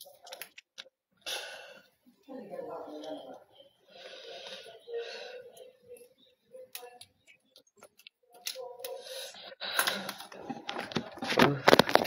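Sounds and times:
faint voice or breath: 3.5s - 6.0s.

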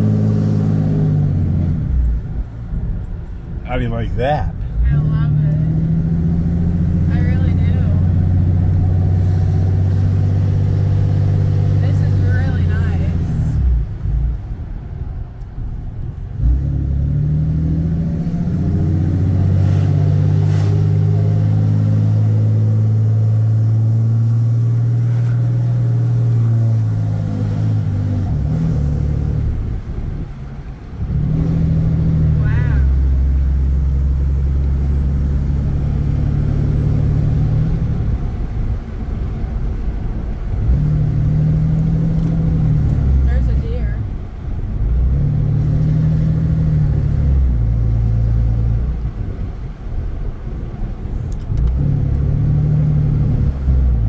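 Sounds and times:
diesel truck engine droning: 0.0s - 54.0s.

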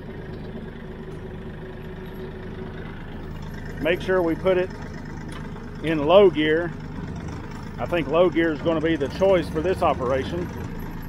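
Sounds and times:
rotary cutter running: 0.0s - 11.0s
tractor diesel engine running: 0.0s - 11.0s.

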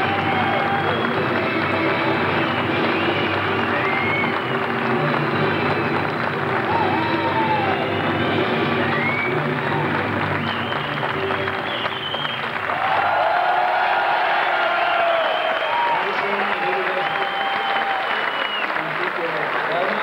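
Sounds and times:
music with long held notes: 0.0s - 12.7s
audience applauding and cheering: 0.0s - 20.0s.

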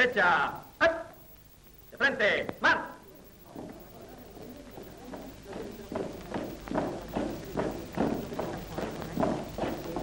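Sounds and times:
men marching on dirt path: 3.4s - 10.0s.

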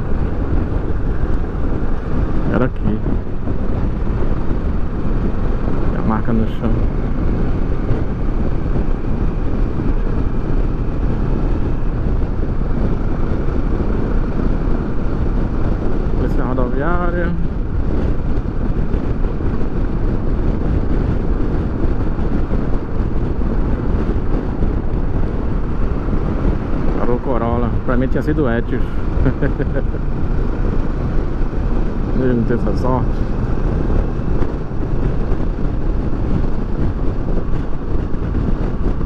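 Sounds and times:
motorcycle engine: 0.0s - 39.0s
road noise: 0.0s - 39.0s
wind rush: 0.0s - 39.0s.

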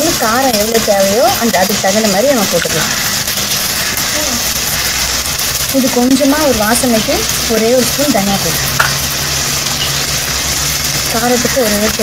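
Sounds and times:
squid sizzling in a pan: 0.0s - 12.0s.

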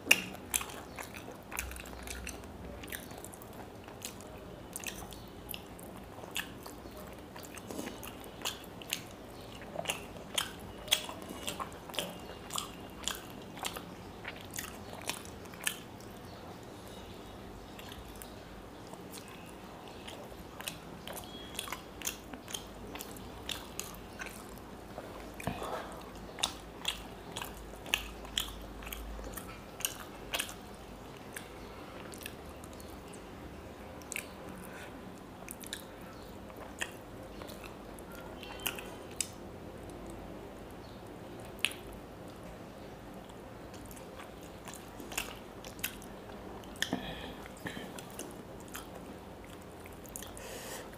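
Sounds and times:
chewing with wet mouth clicks: 0.0s - 17.0s, 17.6s - 33.3s, 34.0s - 50.4s.

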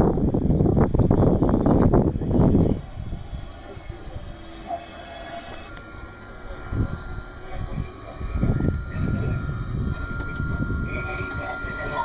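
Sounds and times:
wind buffeting microphone: 0.0s - 4.7s, 5.6s - 12.0s.

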